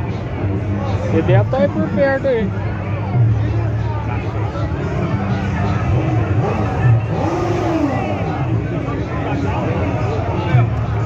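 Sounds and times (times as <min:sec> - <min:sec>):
crowd chatter: 0:00.0 - 0:11.0
motorcycle engine revving: 0:04.7 - 0:11.0.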